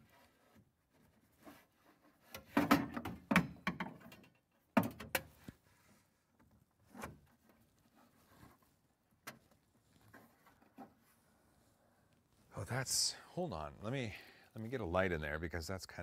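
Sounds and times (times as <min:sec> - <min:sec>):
parts clicking and knocking: 0:02.3 - 0:05.4.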